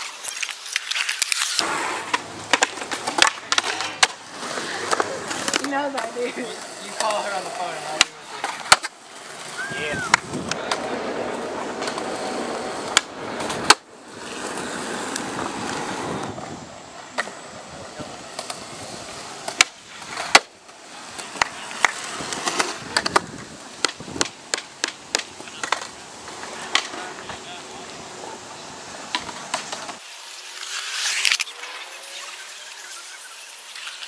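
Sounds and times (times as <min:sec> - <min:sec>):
skateboard clacking on ground: 0:00.0 - 0:32.1
skateboard wheels rolling on concrete: 0:00.0 - 0:34.0.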